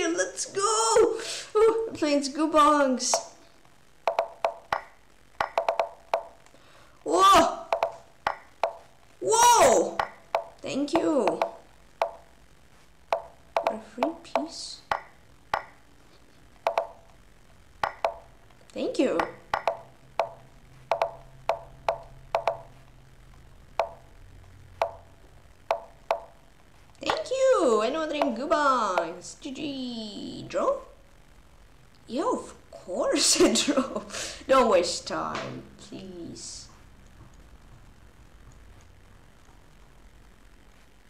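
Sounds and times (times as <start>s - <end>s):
chess move plopping clicks: 3.1s - 3.4s, 4.0s - 6.4s, 7.7s - 8.9s, 9.9s - 12.3s, 13.1s - 15.8s, 16.6s - 17.1s, 17.8s - 18.3s, 19.2s - 22.8s, 23.8s - 24.0s, 24.8s - 25.1s, 25.7s - 26.4s.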